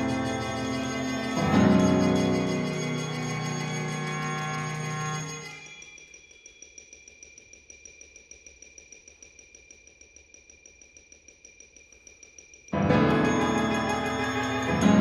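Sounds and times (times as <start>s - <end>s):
chamber ensemble playing softly: 0.0s - 5.8s, 12.8s - 15.0s
chamber ensemble playing loud chord: 12.8s - 15.0s.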